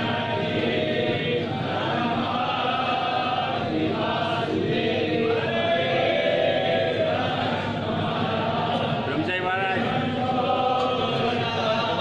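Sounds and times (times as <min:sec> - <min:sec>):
group chanting a hymn: 0:00.0 - 0:12.0.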